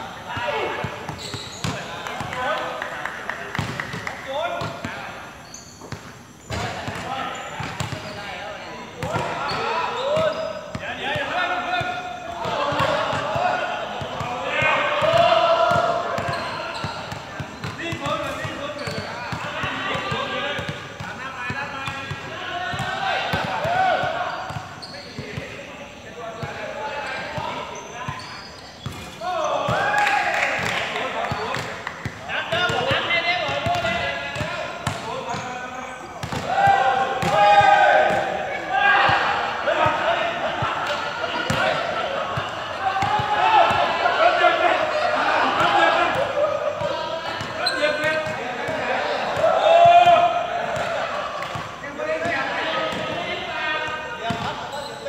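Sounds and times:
basketball bouncing on hard court: 3.6 - 3.9, 5.9 - 8.1, 36.2 - 36.4
players shouting: 8.1 - 25.4, 29.2 - 55.0.

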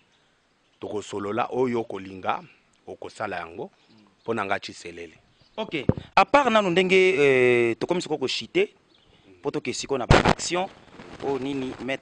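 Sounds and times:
man speaking: 0.8 - 12.0.

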